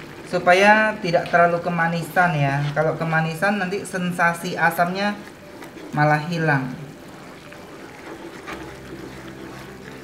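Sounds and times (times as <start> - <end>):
sauce bubbling in a frying pan: 0.0 - 10.0
wooden spatula stirring and scraping: 0.0 - 10.0.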